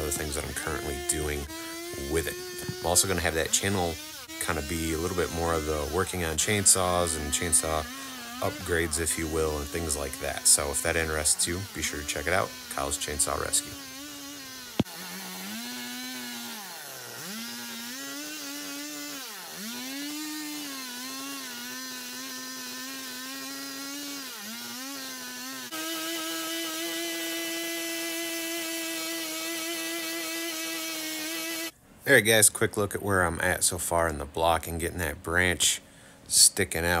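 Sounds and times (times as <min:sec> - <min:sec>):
chainsaw cutting wood: 0:00.0 - 0:31.8.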